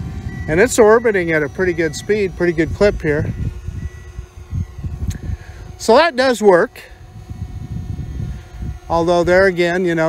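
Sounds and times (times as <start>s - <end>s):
faint steady hum: 0.0s - 10.0s
wind buffeting microphone: 0.0s - 10.0s.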